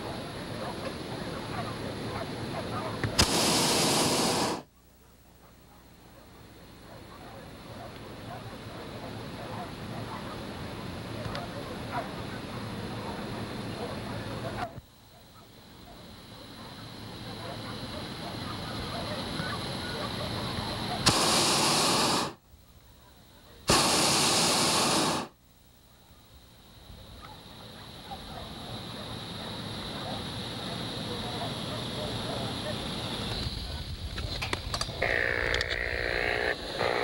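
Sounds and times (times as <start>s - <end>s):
propane burner blasts: 3.0s - 4.7s, 20.8s - 22.4s, 23.6s - 25.4s, 29.6s - 37.0s.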